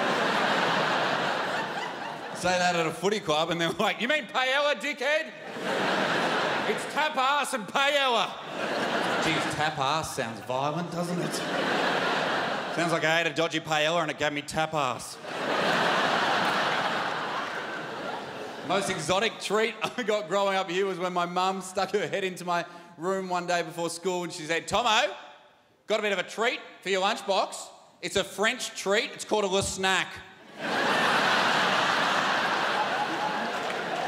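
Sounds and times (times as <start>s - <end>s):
large audience laughing: 0.0s - 4.0s, 5.2s - 13.4s, 15.2s - 20.3s, 30.4s - 34.0s.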